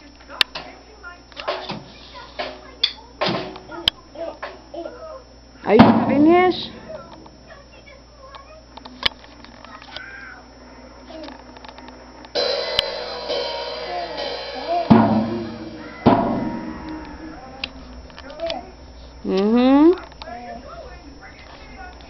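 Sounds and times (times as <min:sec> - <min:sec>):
heavy drum hits: 0:05.8 - 0:06.8, 0:12.4 - 0:17.4
cymbal ringing: 0:12.4 - 0:17.7.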